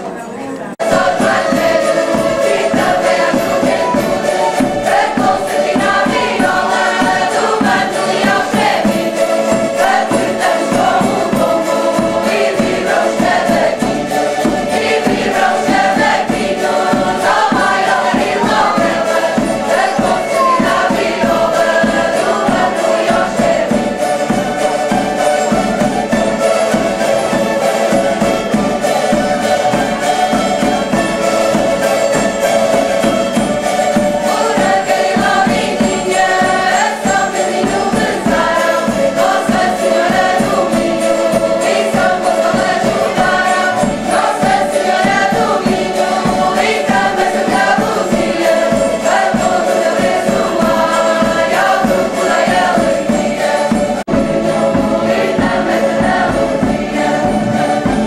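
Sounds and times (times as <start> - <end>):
strummed small guitars: 0.8 - 58.0
women and children singing: 0.8 - 58.0.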